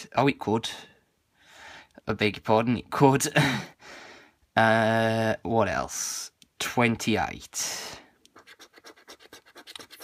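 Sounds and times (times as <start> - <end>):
coin scratching scratchcard: 8.3 - 10.0.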